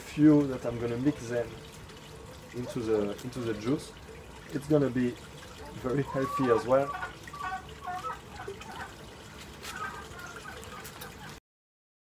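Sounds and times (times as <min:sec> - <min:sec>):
water trickling: 0:00.0 - 0:11.4.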